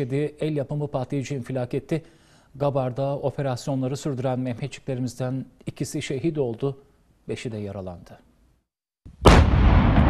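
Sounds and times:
explosion blast: 9.1s - 10.0s.

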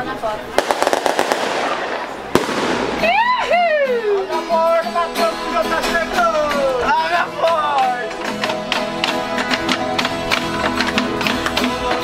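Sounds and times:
firecrackers crackling: 0.5s - 4.0s
firecracker bang: 0.6s - 3.6s.

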